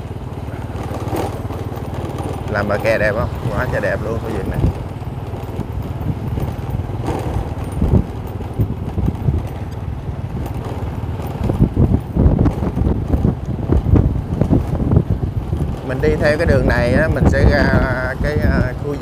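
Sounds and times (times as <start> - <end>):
road and vehicle rumble: 0.0 - 19.0
wind buffeting microphone: 0.0 - 19.0.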